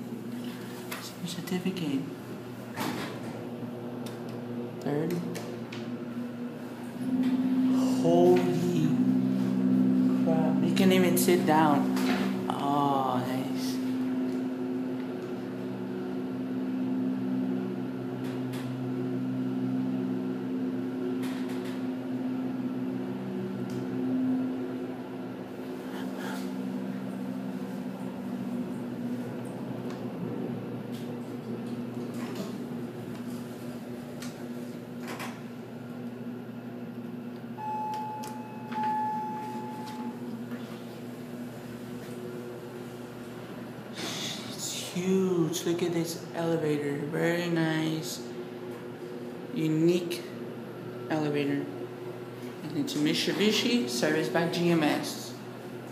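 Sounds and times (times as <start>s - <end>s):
elevator low hum: 0.0s - 55.9s
held electronic tone: 7.0s - 14.8s, 37.6s - 40.3s.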